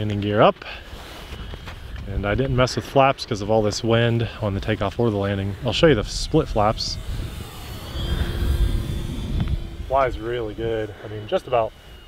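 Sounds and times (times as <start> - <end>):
model plane propeller humming: 0.0 - 12.0
wind buffeting microphone: 1.4 - 11.4.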